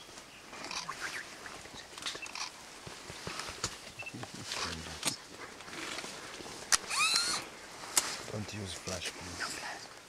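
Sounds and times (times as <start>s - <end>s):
leaves rustling: 0.0s - 10.0s.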